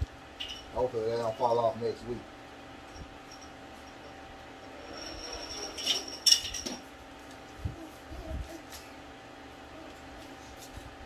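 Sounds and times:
thin high squeak: 4.8 - 6.2.

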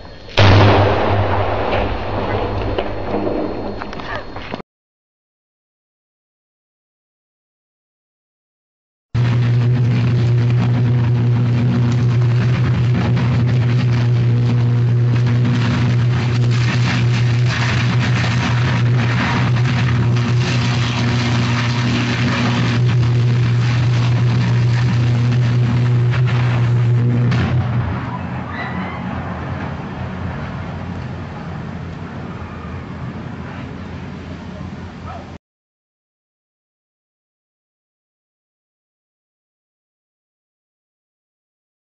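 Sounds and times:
electric arc buzzing: 9.2 - 28.0
crackling of burning transformer: 9.2 - 28.5.

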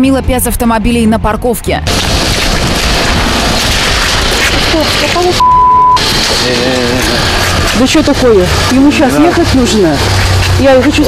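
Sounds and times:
loud rushing noise: 1.8 - 11.0
high-pitched censor bleep: 5.4 - 6.0
person speaking: 6.4 - 11.0.

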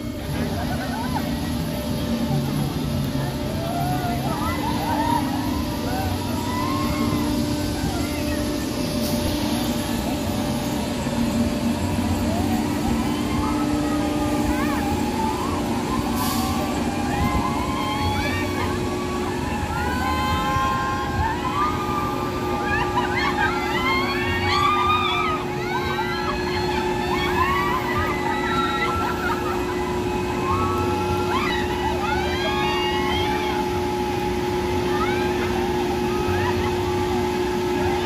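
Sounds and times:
steady low hum: 0.0 - 38.0
riders screaming: 12.6 - 37.9.

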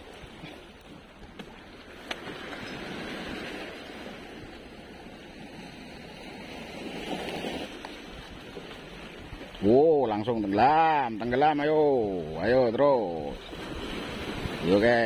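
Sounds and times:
waves washing over rocks: 0.0 - 15.0
wind on microphone: 13.2 - 15.0.

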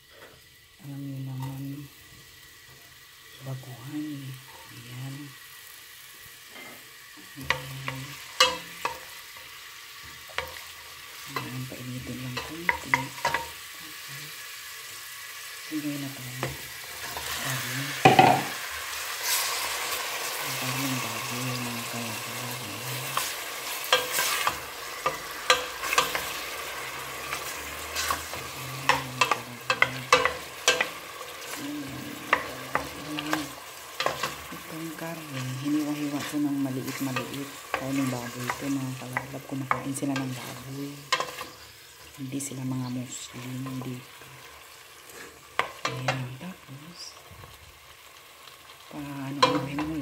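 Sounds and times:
onion frying in oil: 0.0 - 50.0
wooden spoon scraping a pot: 23.1 - 34.7.

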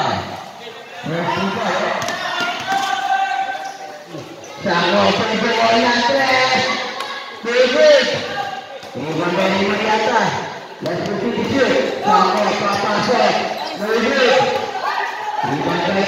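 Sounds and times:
voices talking and calling out: 0.0 - 16.0.

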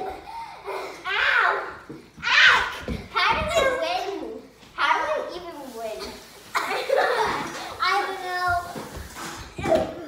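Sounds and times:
children shouting and squealing: 0.0 - 4.2.

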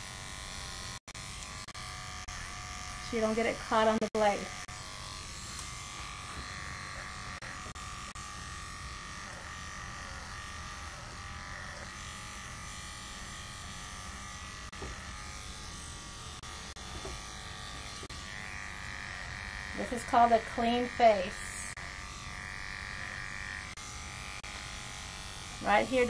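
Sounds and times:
electric clippers humming: 0.0 - 26.0.

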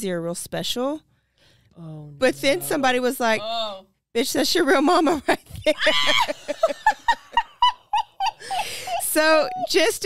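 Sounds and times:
woman laughing: 5.0 - 9.8.

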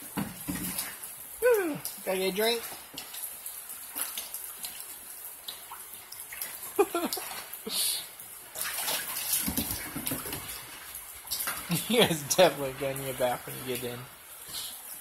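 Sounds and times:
water splashing in a pool: 0.0 - 15.0.

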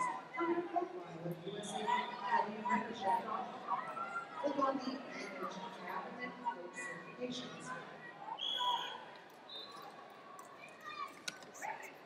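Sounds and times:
faint voices in a large hall: 0.0 - 12.0.

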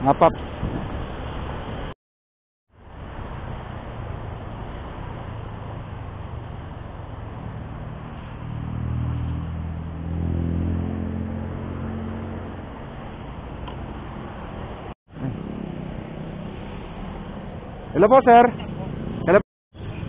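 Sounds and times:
wind and road noise: 0.0 - 2.0, 2.7 - 20.0.

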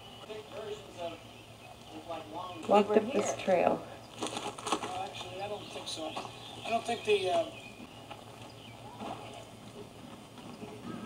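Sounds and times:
people talking indistinctly: 0.2 - 7.8.

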